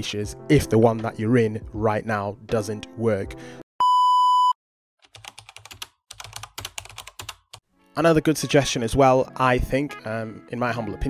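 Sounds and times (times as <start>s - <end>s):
test-card beep: 3.8s - 4.6s.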